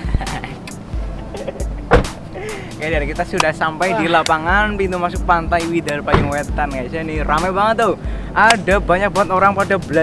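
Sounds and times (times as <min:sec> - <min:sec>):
background music: 0:00.0 - 0:10.0
car door shutting: 0:01.4 - 0:02.2, 0:06.0 - 0:06.5.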